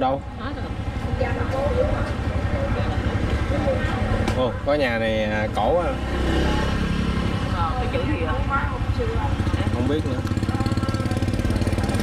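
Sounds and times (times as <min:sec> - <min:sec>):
motorbike engine running: 0:00.0 - 0:12.0.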